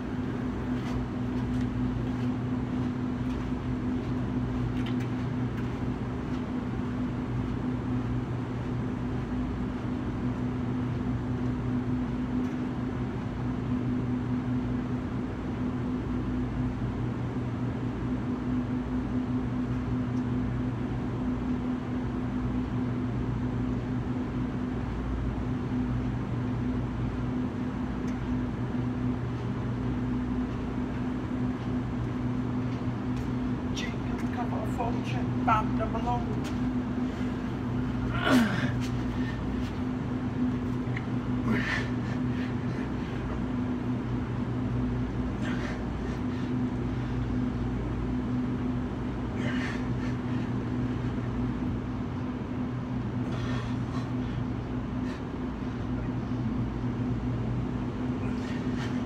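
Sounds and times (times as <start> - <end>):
low mechanical hum: 0.0 - 59.0.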